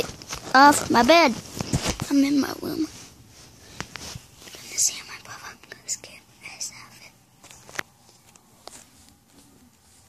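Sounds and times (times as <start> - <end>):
child whispering: 4.5 - 7.2.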